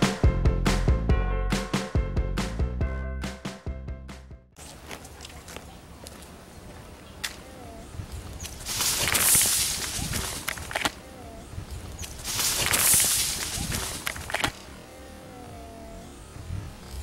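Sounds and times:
animal rustling through dry leaves: 0:08.0 - 0:14.6.

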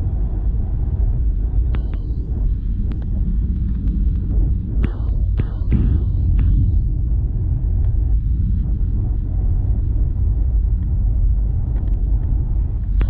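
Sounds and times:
aircraft cabin engine rumble: 0:00.0 - 0:13.0
faint ticks: 0:11.6 - 0:13.0.

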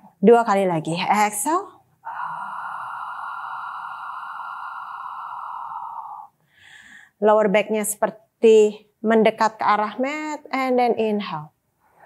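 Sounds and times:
woman exhaling through mouth: 0:02.0 - 0:07.0.

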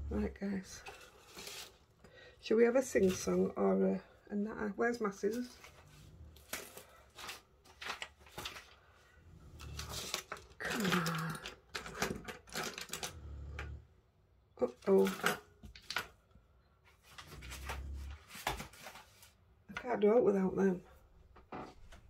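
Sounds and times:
objects handled on a desk: 0:05.3 - 0:08.8.

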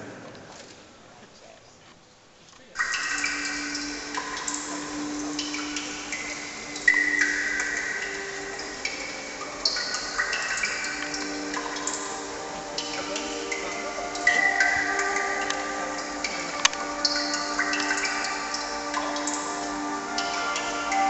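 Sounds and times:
music with high ringing notes: 0:02.8 - 0:21.0.

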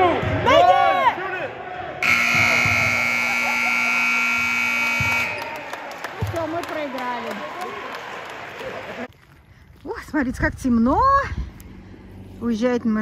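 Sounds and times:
scoreboard horn buzzing: 0:02.0 - 0:05.6.

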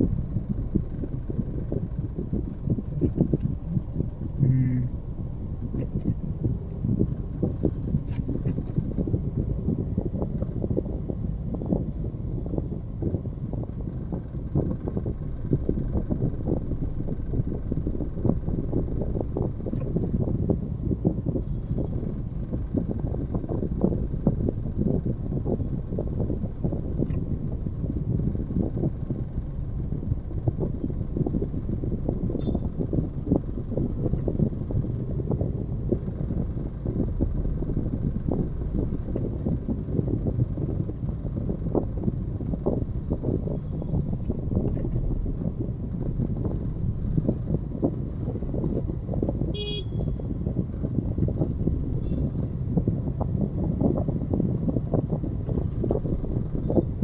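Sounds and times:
car road and engine rumble: 0:00.0 - 0:57.0.

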